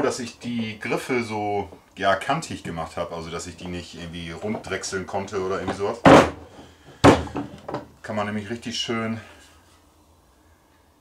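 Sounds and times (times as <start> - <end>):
sharp wooden knocks: 5.7 - 7.9.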